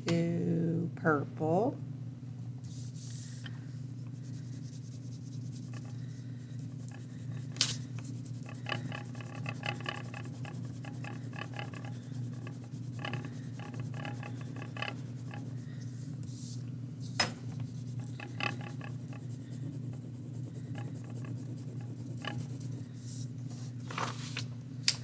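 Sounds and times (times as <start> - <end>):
low room hum: 0.0 - 25.0
crayon scribbling on paper: 4.2 - 15.6, 17.7 - 23.3.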